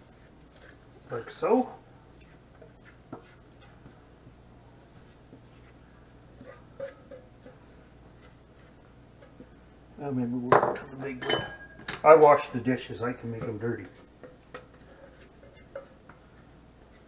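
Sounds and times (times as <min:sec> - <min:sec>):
spatula scraping bowl: 0:00.0 - 0:04.0, 0:04.9 - 0:09.6, 0:12.6 - 0:17.0
man talking: 0:01.1 - 0:01.8, 0:12.0 - 0:14.0.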